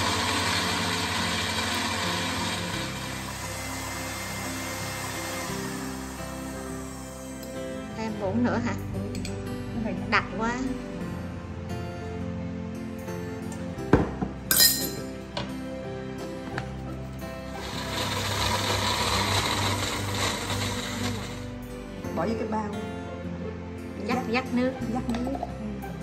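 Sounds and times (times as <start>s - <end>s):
small blender running: 0.0s - 7.8s, 17.5s - 21.6s.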